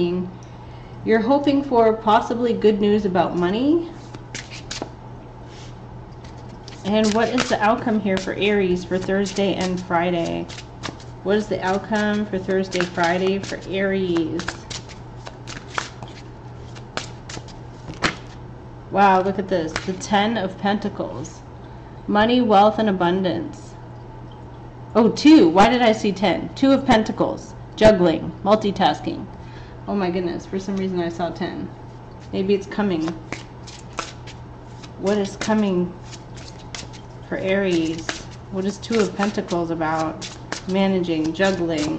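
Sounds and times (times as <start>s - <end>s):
cards being shuffled: 4.0s - 4.9s, 5.6s - 18.4s, 19.7s - 20.0s, 33.0s - 41.9s.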